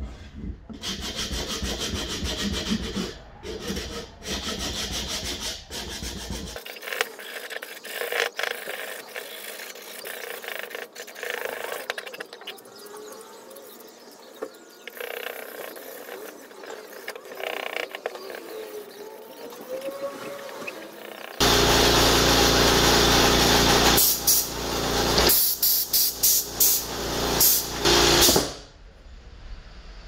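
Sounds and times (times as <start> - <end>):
sandpaper rubbing on knife handle: 0.8 - 11.8
compressed air blow gun hissing: 23.4 - 24.6, 25.2 - 28.6.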